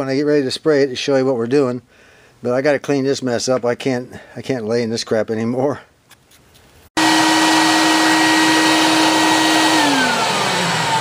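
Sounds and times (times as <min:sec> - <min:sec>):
vacuum cleaner running: 0:07.0 - 0:11.0.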